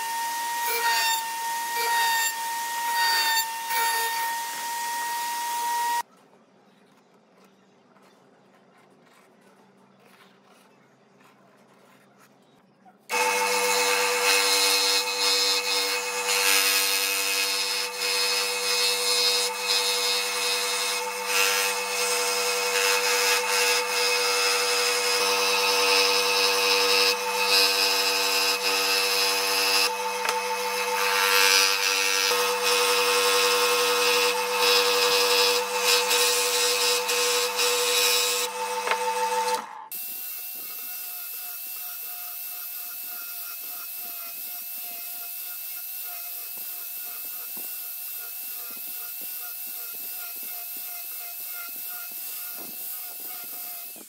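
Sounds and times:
scroll saw cutting wood: 0:00.0 - 0:06.1, 0:13.1 - 0:54.0
angle grinder whine: 0:13.1 - 0:54.0.

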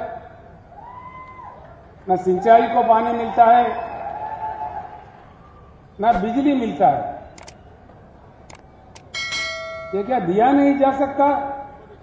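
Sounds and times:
faint background noise: 0:00.0 - 0:12.0
man speaking over public address: 0:06.0 - 0:07.2, 0:09.9 - 0:11.8
held ringing tone: 0:09.0 - 0:10.6.

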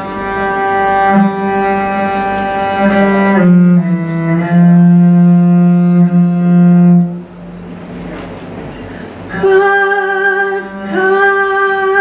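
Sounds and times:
cello bowing a low note: 0:00.0 - 0:12.0.

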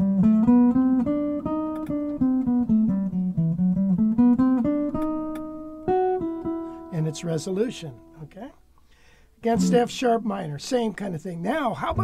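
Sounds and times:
jazz guitar single-note line: 0:00.0 - 0:08.7, 0:09.4 - 0:12.0.

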